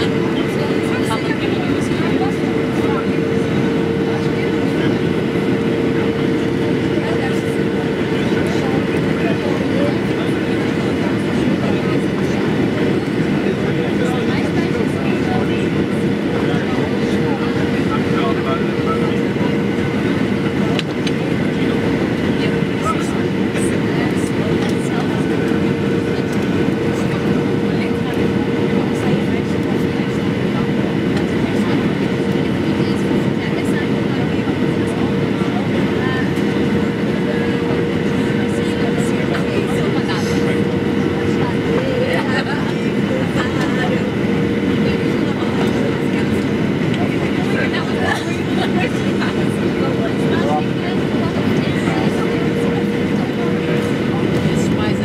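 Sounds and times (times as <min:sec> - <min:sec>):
airplane cabin noise: 0:00.0 - 0:55.0.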